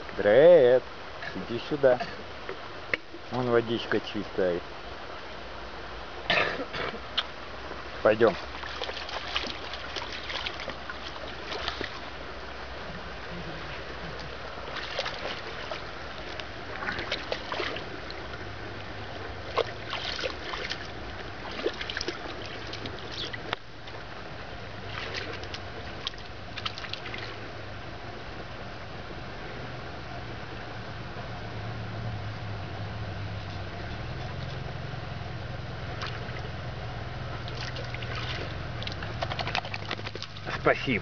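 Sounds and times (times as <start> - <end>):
dog paws splashing in water: 8.3 - 12.2, 13.3 - 24.0, 24.8 - 27.4, 35.9 - 36.6, 37.3 - 41.0.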